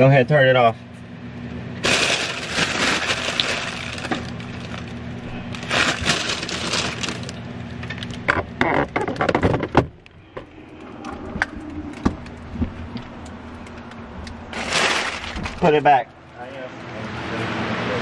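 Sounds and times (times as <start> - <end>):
steady low hum: 0.0 - 18.0
tint film crackling and crinkling: 1.8 - 9.3, 11.6 - 15.8.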